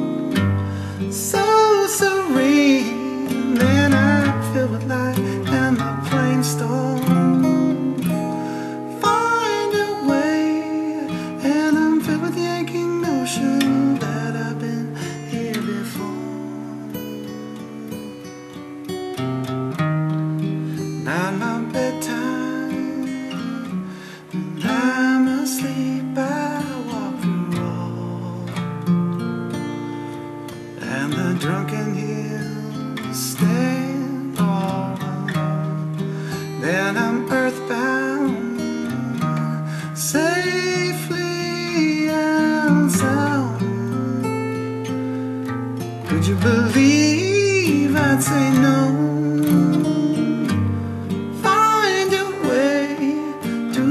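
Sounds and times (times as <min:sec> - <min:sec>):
person singing: 0:00.0 - 0:18.4, 0:20.9 - 0:28.7, 0:30.8 - 0:45.1, 0:45.9 - 0:53.9
acoustic guitar strumming: 0:00.0 - 0:53.9.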